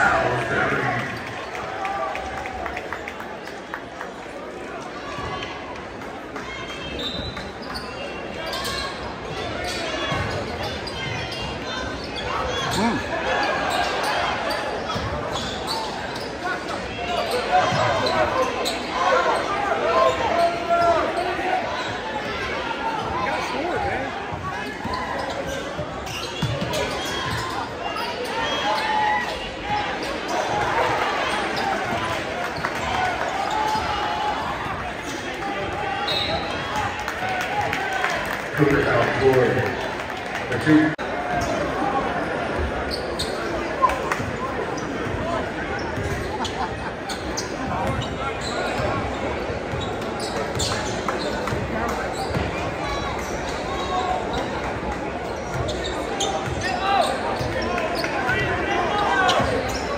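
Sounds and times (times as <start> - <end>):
crowd chatter and calls: 0.0 - 59.9.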